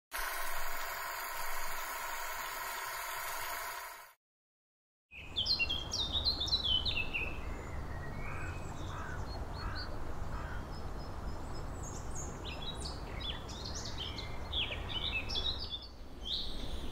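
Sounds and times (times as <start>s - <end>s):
songbirds singing: 5.1s - 16.9s.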